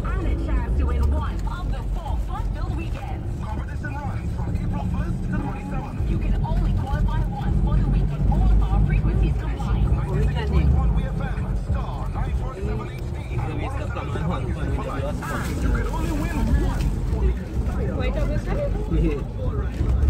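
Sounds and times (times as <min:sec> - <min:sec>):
car engine and tyres rumbling: 0:00.0 - 0:20.0
indistinct voices: 0:00.0 - 0:20.0.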